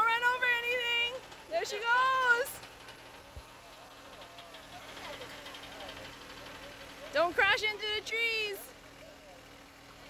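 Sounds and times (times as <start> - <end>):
tractor diesel engine hum: 0.0 - 10.0.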